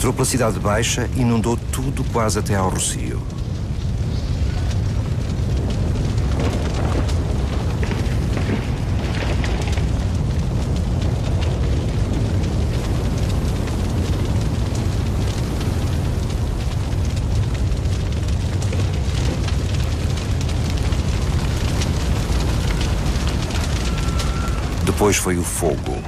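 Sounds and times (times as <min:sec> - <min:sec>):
deep rumble: 0:00.0 - 0:26.0
fire crackling: 0:00.0 - 0:26.0.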